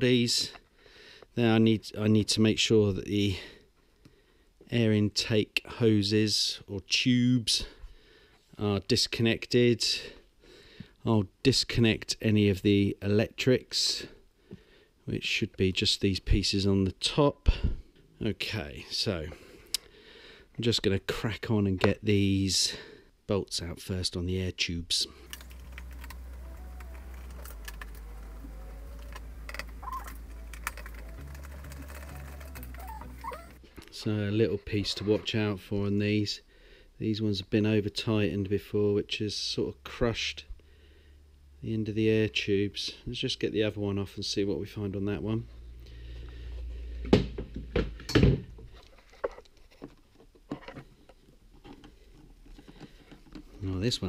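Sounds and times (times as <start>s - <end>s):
hand tools clicking and tapping: 25.3s - 33.6s.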